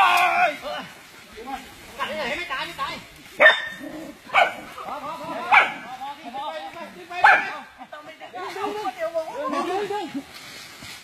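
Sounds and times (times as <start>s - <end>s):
dog barking: 3.4s - 4.7s, 5.4s - 5.8s, 7.2s - 7.6s
people talking: 4.3s - 10.3s.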